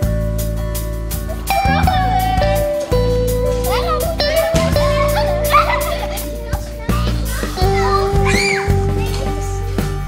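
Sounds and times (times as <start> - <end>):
background music with held notes: 0.0 - 10.0
children calling out and laughing: 1.5 - 10.0
children's high shouts: 3.7 - 6.3, 7.1 - 9.2.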